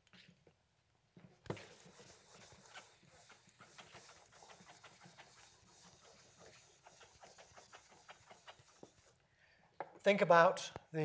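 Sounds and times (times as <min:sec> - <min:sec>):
eraser scrubbing chalkboard: 0:01.5 - 0:09.2.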